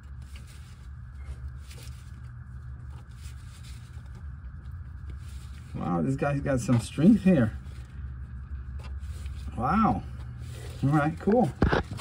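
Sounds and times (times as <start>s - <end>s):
gloved hand rustling and scraping: 0.0s - 12.0s
steady low hum: 0.0s - 12.0s.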